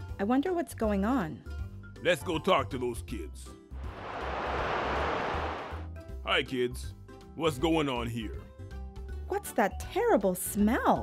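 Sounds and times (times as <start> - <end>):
whoosh sound effect: 3.8 - 5.8.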